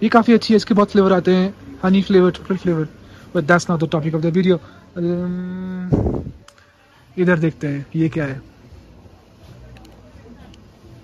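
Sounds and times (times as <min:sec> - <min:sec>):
faint store background: 0:00.0 - 0:11.0.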